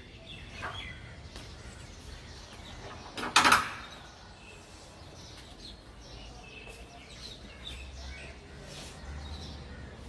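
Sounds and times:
faint birds chirping: 0.0 - 10.0
outdoor background noise: 0.0 - 10.0.

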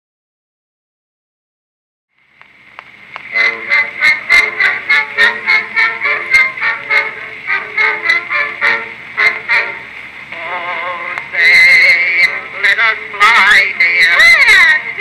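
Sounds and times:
record surface hiss: 2.1 - 15.0
thin instrumental music: 3.2 - 15.0.

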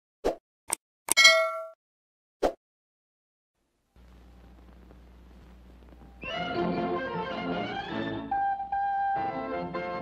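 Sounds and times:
bright bell ding: 1.1 - 1.8.

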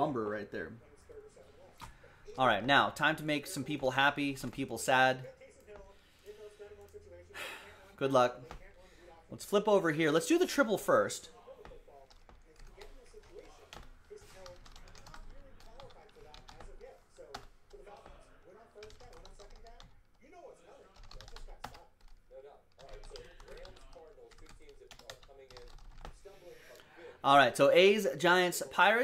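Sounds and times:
computer keyboard typing: 11.4 - 20.3, 20.9 - 26.3.

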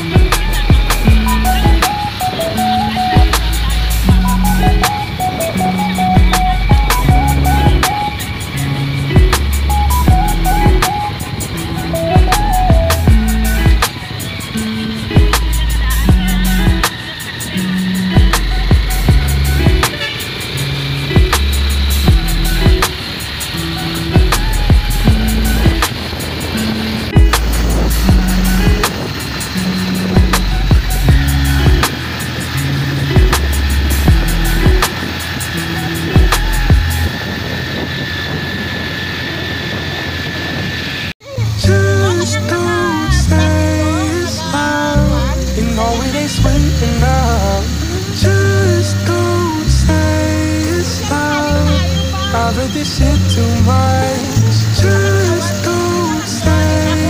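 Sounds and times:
music with steady beat and bass: 0.0 - 37.2, 41.4 - 57.0
song with singing: 0.0 - 37.2, 41.2 - 57.0.

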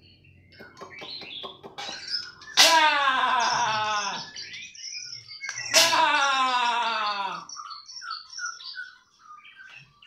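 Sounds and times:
bird whistling song: 0.0 - 6.1, 7.4 - 10.0
drawn-out falling bird call: 5.4 - 7.5.

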